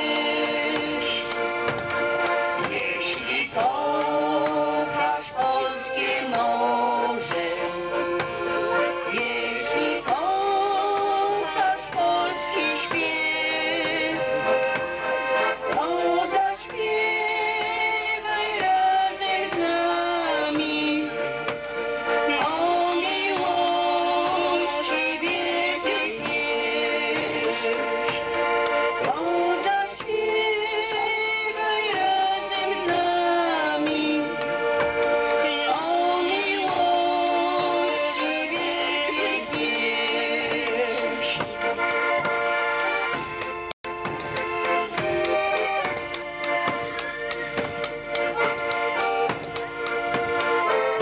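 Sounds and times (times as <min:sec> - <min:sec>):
accordion: 0:00.0 - 0:51.0
folk band playing: 0:00.0 - 0:51.0
women singing held notes: 0:00.0 - 0:51.0
drum hits: 0:43.1 - 0:50.5.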